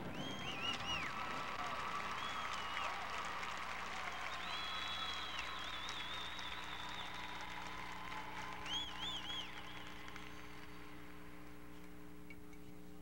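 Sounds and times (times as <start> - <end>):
electrical hum: 4.4 - 13.0.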